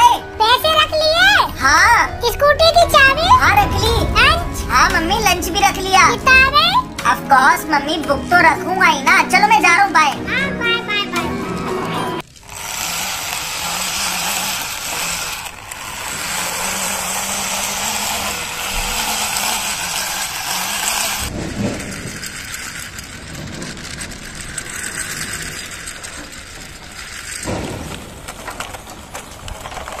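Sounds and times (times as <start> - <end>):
plastic toy wheels rolling on concrete: 0.0 - 4.4, 5.0 - 30.0.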